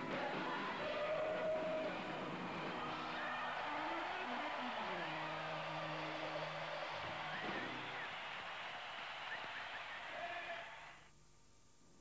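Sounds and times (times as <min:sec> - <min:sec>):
stadium crowd cheering: 0:00.0 - 0:11.1.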